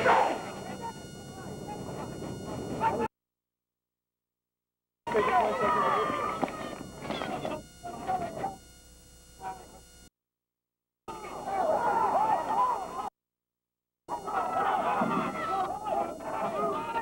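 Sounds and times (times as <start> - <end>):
crowd chattering: 5.1 - 8.6, 11.1 - 13.1, 14.1 - 17.0.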